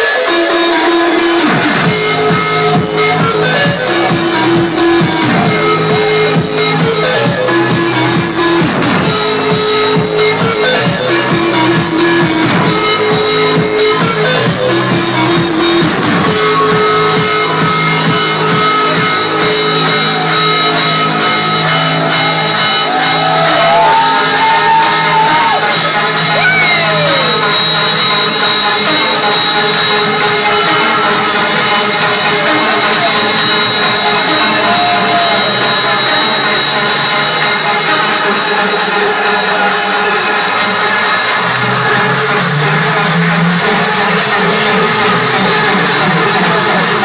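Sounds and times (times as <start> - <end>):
electronic dance music: 0.0 - 47.0
crowd shouts: 19.8 - 27.7, 30.2 - 36.5, 37.8 - 42.1.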